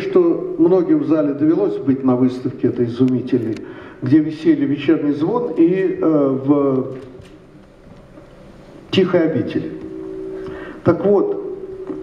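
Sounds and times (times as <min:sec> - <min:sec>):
man speaking: 0:00.0 - 0:07.1, 0:08.9 - 0:09.9, 0:10.8 - 0:11.6
hall room tone: 0:00.0 - 0:12.0.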